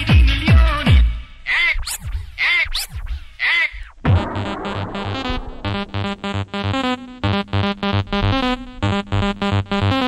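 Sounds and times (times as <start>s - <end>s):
scratch-like swooping sounds: 1.6s - 3.3s
low thumps: 3.9s - 9.8s.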